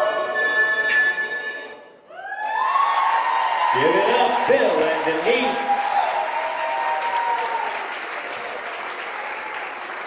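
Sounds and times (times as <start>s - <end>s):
audience applause and cheering: 2.1s - 10.0s.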